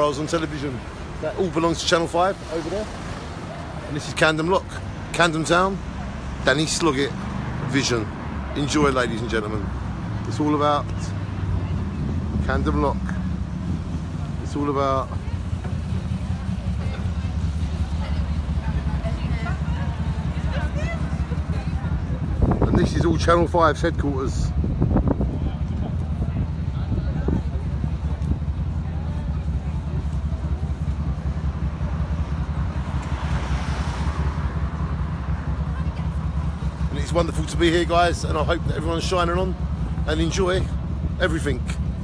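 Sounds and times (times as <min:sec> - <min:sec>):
faint voices of passers-by: 0:00.0 - 0:42.0
passing traffic rumble: 0:00.0 - 0:42.0
wind rumble on microphone: 0:21.9 - 0:28.8.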